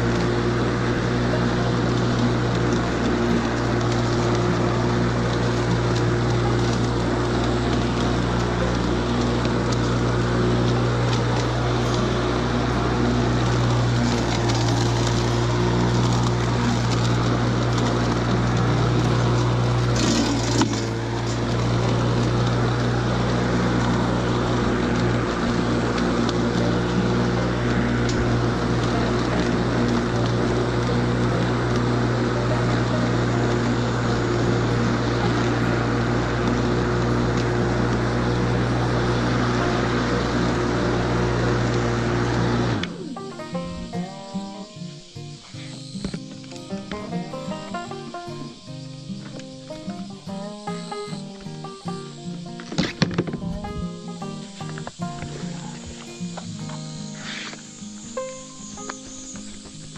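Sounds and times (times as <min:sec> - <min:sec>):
lawn mower running: 0:00.0 - 0:59.9.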